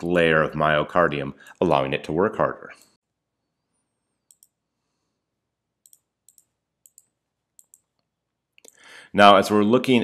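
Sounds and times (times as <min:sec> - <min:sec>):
computer mouse clicks: 0:04.2 - 0:04.6, 0:05.8 - 0:08.8.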